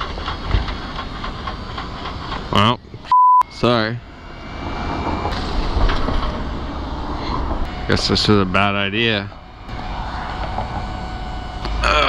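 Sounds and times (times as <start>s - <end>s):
traffic engines and tyre noise: 0.0s - 12.0s.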